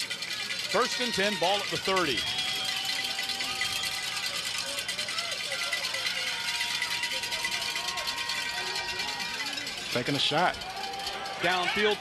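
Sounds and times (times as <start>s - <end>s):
crowd and field noise: 0.0s - 12.0s.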